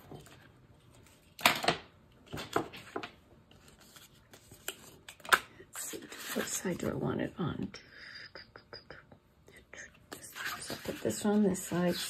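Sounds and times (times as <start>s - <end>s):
soft paper rustle: 2.7s - 5.2s, 10.1s - 12.0s.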